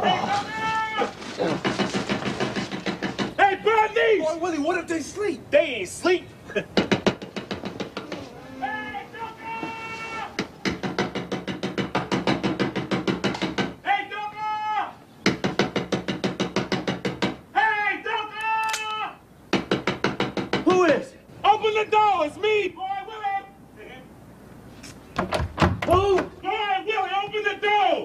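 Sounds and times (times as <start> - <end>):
man shouting: 0.0 - 1.2, 3.4 - 6.2, 8.5 - 10.4, 13.8 - 15.0, 17.5 - 19.2, 20.7 - 24.1, 25.9 - 28.0
rapid knocking on a door: 1.6 - 3.4, 6.8 - 8.1, 10.4 - 13.8, 15.2 - 17.4, 19.5 - 20.8.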